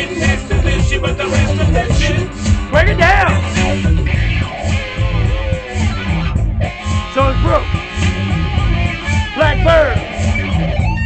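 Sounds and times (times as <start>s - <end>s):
funk music with electric guitar: 0.0s - 11.0s.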